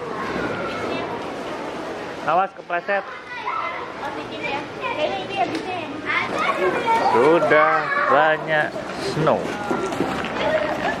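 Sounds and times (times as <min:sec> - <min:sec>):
children talking and calling out: 0:00.0 - 0:02.2, 0:02.8 - 0:11.0
steady background noise: 0:00.0 - 0:11.0.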